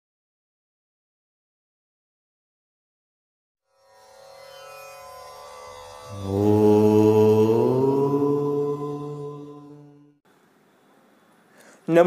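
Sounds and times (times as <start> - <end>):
deep chanted note: 4.2 - 10.2.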